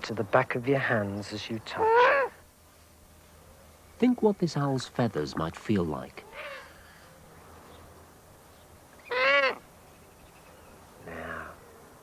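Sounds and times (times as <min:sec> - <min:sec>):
owl call: 0:01.7 - 0:02.4, 0:06.2 - 0:07.2, 0:09.0 - 0:09.7, 0:10.3 - 0:11.9.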